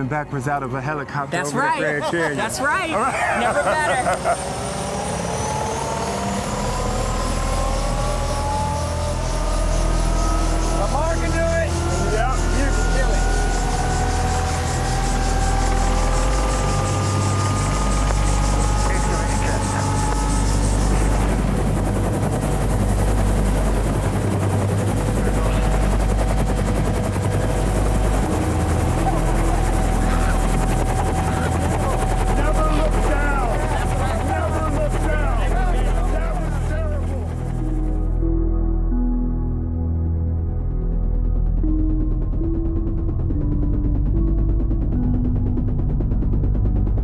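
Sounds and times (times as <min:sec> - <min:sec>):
helicopter turbine whine: 0:00.0 - 0:39.0, 0:40.9 - 0:47.0
rotor blades beating: 0:01.5 - 0:38.3.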